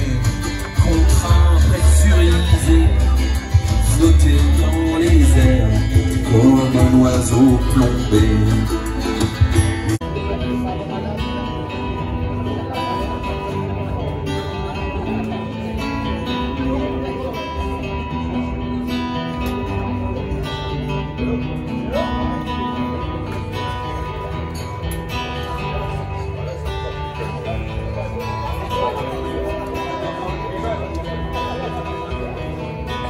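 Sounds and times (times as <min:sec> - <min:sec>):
acoustic guitar strumming: 0:00.0 - 0:33.0.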